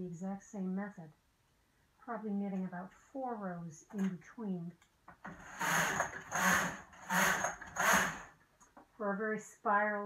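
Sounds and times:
knitting machine carriage scraping: 5.2s - 8.3s.

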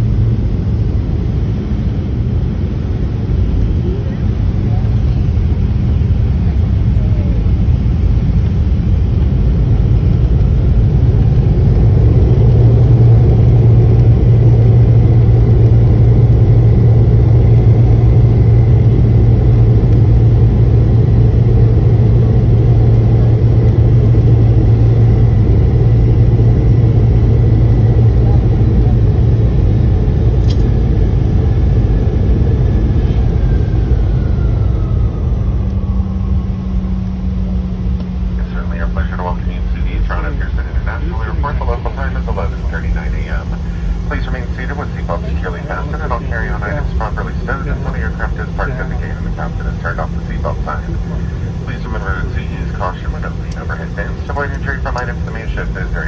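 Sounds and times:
airliner engine drone: 0.0s - 56.0s
faint descending whine: 31.9s - 52.4s.

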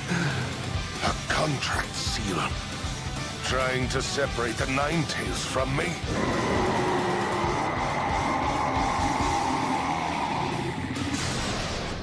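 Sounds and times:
dramatic background music: 0.0s - 12.0s
monster roaring: 6.0s - 11.3s.

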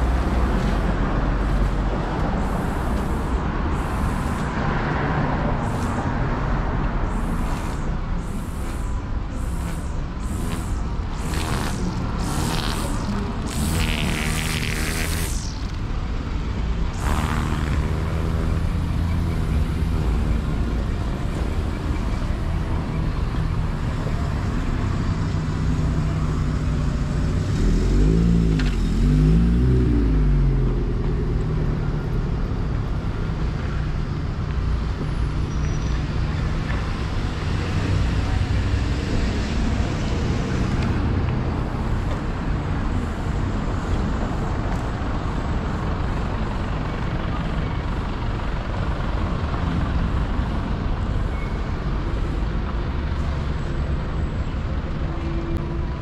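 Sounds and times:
hum of traffic: 0.0s - 56.0s
vehicle engine passing by: 9.4s - 15.8s, 16.9s - 22.0s, 24.2s - 33.5s.

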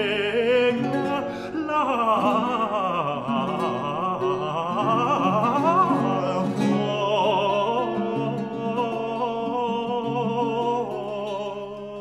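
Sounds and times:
plucked-string accompaniment: 0.0s - 12.0s.

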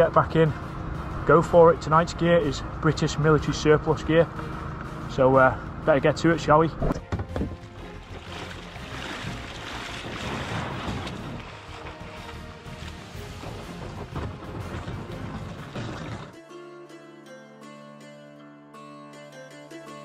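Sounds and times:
background music: 0.0s - 20.0s
plucked-string music: 0.0s - 20.0s
water splashing around a kayak: 6.8s - 16.4s.

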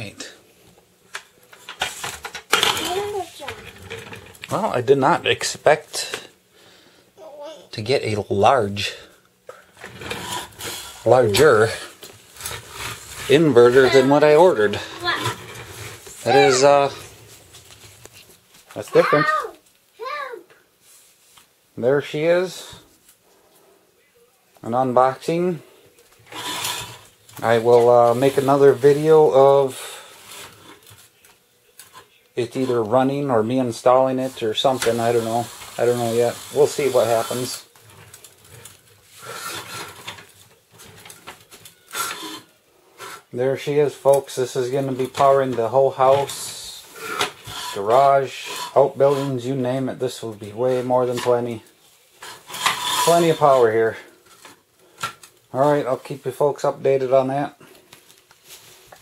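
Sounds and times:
faint rustling handling noise: 7.7s - 59.0s.

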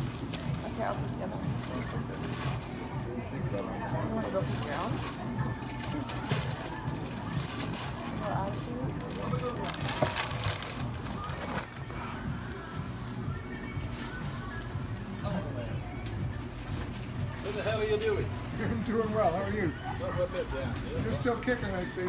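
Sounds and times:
quiet background music: 0.0s - 22.0s
indistinct talk: 0.2s - 22.0s.

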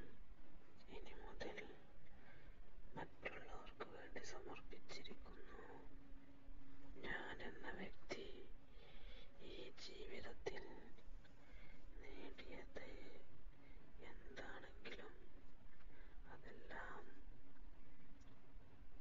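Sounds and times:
person whispering: 0.8s - 1.9s, 3.0s - 5.9s, 7.0s - 8.6s, 9.4s - 11.0s, 11.9s - 13.3s, 14.0s - 15.4s, 16.2s - 17.2s.

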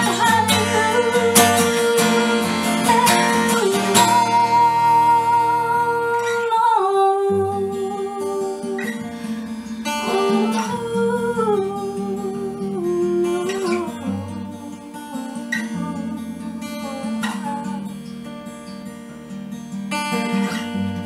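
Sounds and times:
woman singing wordlessly: 0.0s - 9.1s, 9.8s - 18.0s
acoustic guitar: 0.0s - 21.0s.

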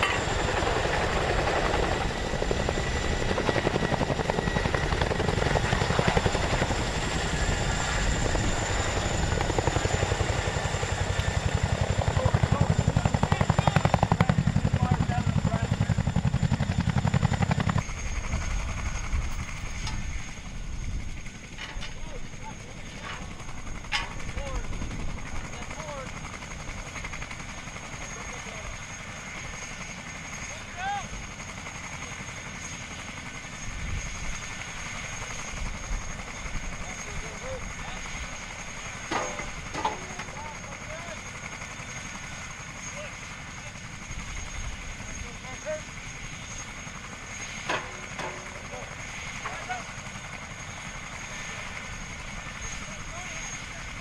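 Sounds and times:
helicopter rotor blades beating: 0.0s - 54.0s
open field background: 0.0s - 54.0s.

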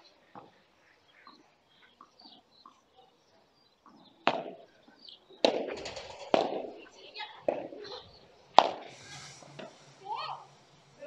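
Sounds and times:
ball bounces: 3.8s - 4.7s, 5.4s - 6.8s, 7.4s - 7.9s, 8.6s - 8.9s
padel racket striking ball: 4.3s - 4.6s, 5.4s - 6.8s, 8.6s - 8.8s.

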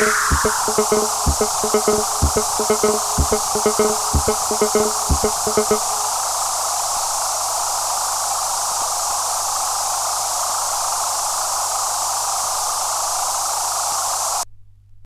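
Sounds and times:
low hum: 0.0s - 6.7s
synthesized white noise hiss: 0.0s - 14.4s.

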